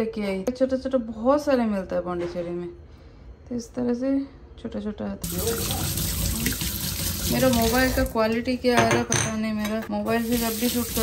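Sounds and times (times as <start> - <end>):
tap water running into sink: 5.2 - 8.2, 10.1 - 11.0
water splashing over dish: 5.2 - 8.2, 10.2 - 11.0.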